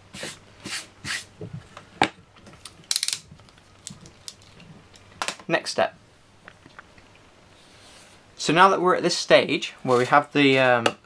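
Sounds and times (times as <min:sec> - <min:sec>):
rustling brushes: 0:07.4 - 0:08.3, 0:09.7 - 0:10.7.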